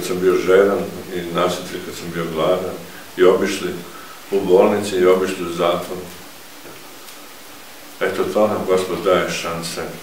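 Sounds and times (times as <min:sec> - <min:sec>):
voice: 0:00.0 - 0:06.2, 0:08.0 - 0:10.0
room tone hiss: 0:00.0 - 0:10.0.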